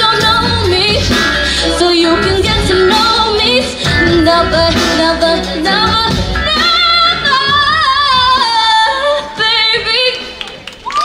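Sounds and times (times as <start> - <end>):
girl singing wordless vocal runs: 0.0 - 10.4.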